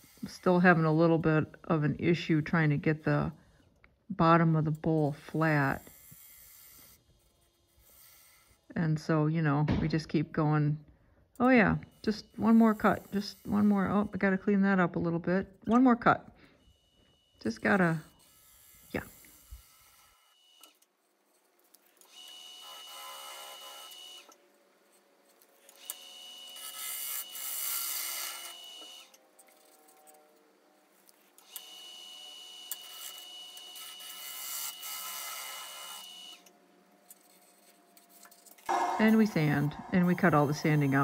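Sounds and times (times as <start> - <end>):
gouge cutting wood on a lathe: 22.0 - 25.0, 25.6 - 29.8, 31.2 - 36.5
steady high tone: 38.7 - 41.0.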